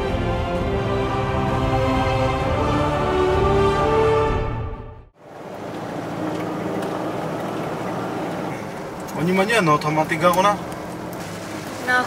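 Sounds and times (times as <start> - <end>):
road noise: 0.0 - 12.0
car engine hum: 5.1 - 12.0.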